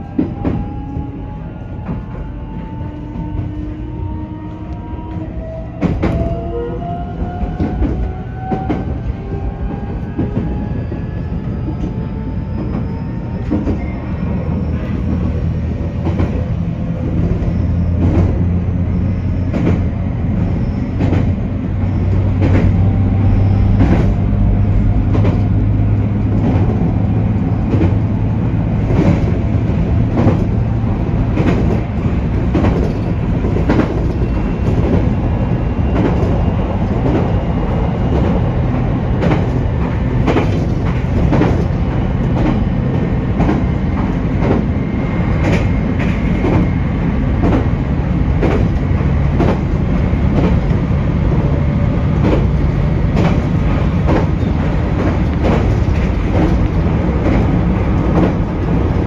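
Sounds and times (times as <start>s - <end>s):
train running rumble: 0.0s - 59.0s.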